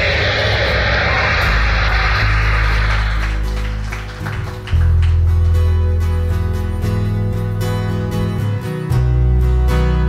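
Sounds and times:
deep bass: 0.0 - 7.9.

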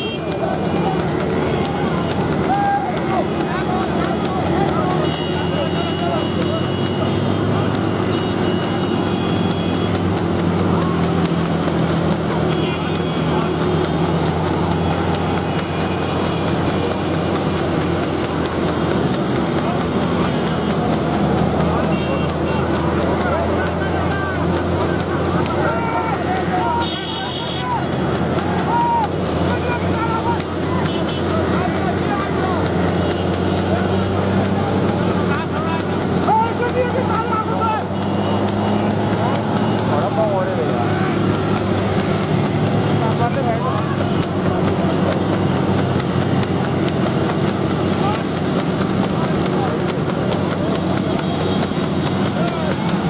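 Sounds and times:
men shouting: 0.0 - 46.9
motorcycle and car engines running: 0.0 - 53.0.

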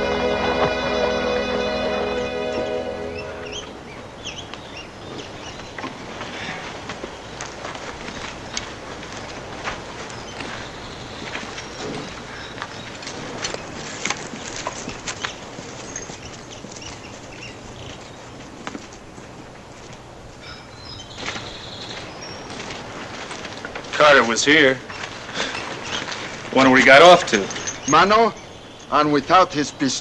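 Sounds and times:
footsteps on dirt: 5.6 - 20.4, 21.0 - 26.6.

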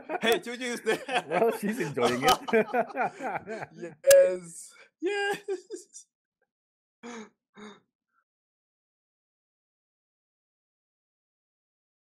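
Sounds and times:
short wordless vocal sounds: 1.7 - 2.6, 3.2 - 5.1.

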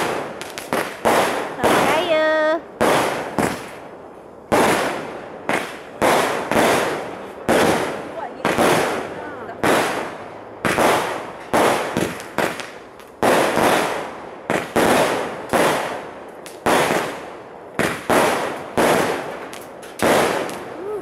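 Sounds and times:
fireworks bangs: 0.0 - 21.0.

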